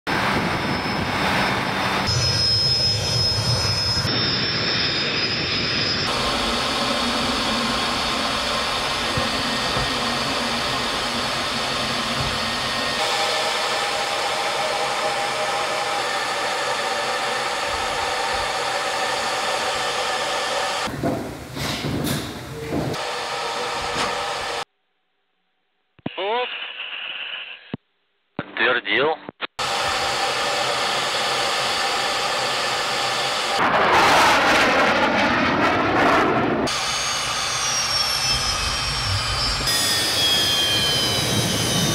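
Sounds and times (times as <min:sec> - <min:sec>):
jet engines running with high whine: 0:00.1 - 0:24.7, 0:29.6 - 0:41.9.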